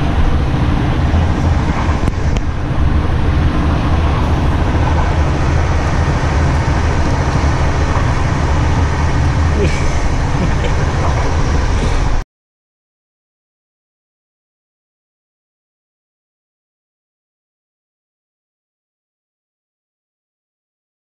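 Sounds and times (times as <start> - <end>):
passengers' voices: 0.0 - 12.2
train rumbling: 0.0 - 12.2.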